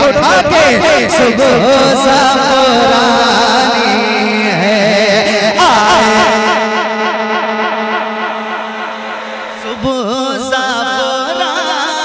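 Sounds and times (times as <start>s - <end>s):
man singing long wavering note: 1.0s - 12.0s
sustained drone accompaniment: 2.5s - 11.9s.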